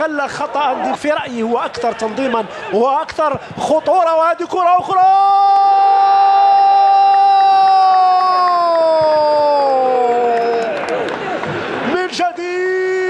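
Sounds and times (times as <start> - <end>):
man shouting long goal cry: 3.8 - 10.8.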